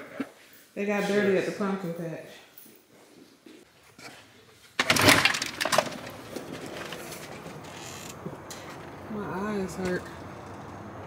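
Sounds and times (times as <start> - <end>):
steady background noise: 0.0 - 11.0
loud rattling clatter: 4.8 - 7.8.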